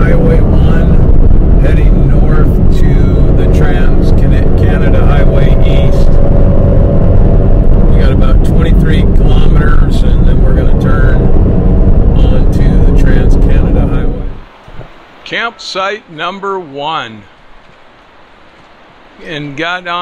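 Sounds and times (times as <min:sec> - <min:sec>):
car road and engine rumble: 0:00.0 - 0:15.3.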